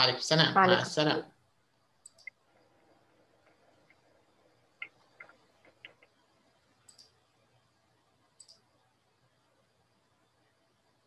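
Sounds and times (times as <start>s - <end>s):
computer mouse clicking: 2.0s - 2.4s, 4.8s - 6.2s, 6.8s - 7.2s, 8.4s - 8.6s.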